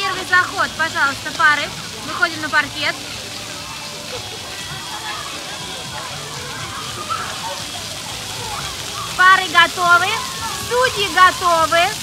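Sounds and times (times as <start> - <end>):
fountain jets spraying water: 0.0 - 12.0
faint children's voices: 1.7 - 12.0.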